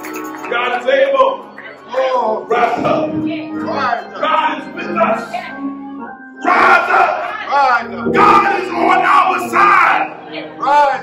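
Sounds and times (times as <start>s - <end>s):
man shouting preaching: 0.6s - 5.4s, 6.4s - 11.0s
held instrument chords: 1.4s - 10.7s.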